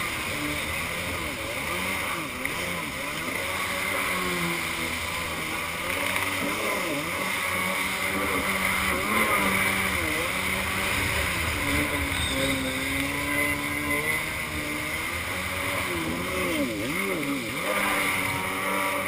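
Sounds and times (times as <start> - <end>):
jet ski engine revving: 0.0 - 19.0.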